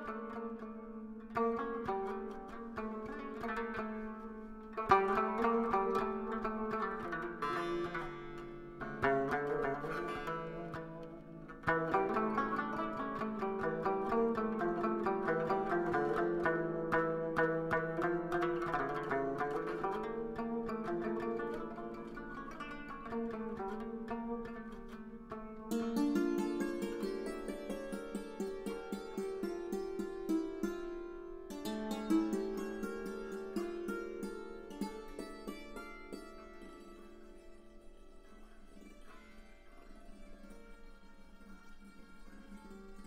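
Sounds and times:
plucked string melody: 0.0 - 43.0.

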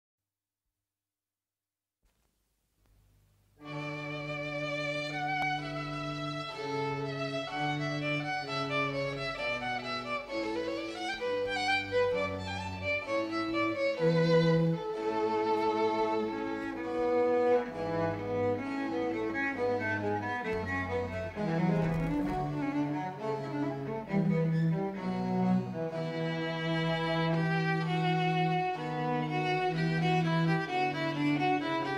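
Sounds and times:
cello bass: 3.6 - 31.9
violin: 3.6 - 31.9.

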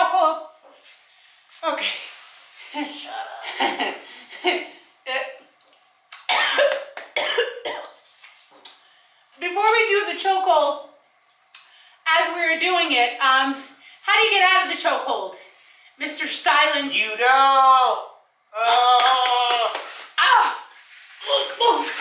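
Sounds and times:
person coughing: 6.3 - 8.0.

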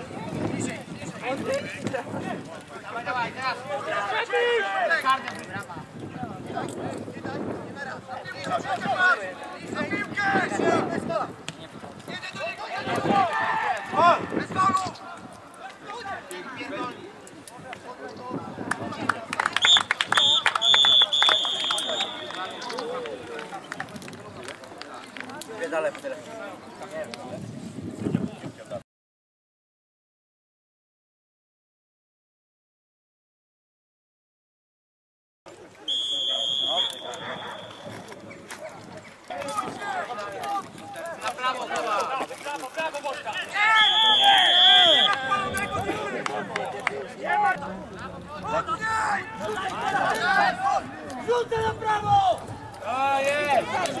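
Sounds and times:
people shouting: 3.7 - 5.2, 12.4 - 14.7, 36.1 - 38.1, 43.1 - 47.7, 48.4 - 54.0
referee's whistle blast: 19.6 - 22.8, 35.9 - 38.0, 43.8 - 45.9.

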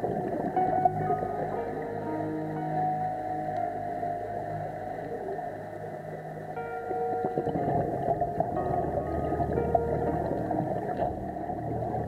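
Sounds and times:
slow background music: 0.0 - 12.0.

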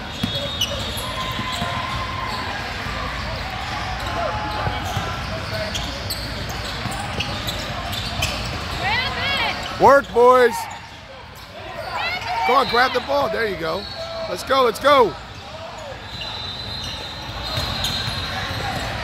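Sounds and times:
basketball bouncing on court: 0.0 - 2.6, 4.5 - 8.8.

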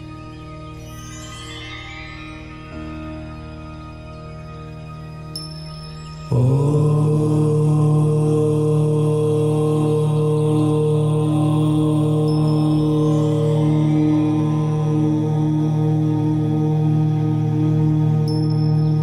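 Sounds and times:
low voice chanting om: 6.1 - 19.0.

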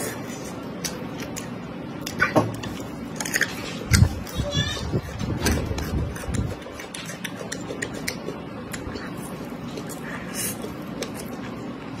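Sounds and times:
biting and chewing food: 0.1 - 12.0
wet mouth clicks: 5.8 - 11.4.

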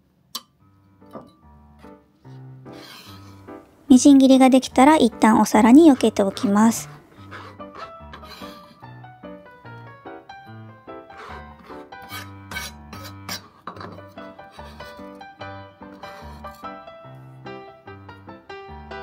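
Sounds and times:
knife on cutting board: 2.7 - 3.4.

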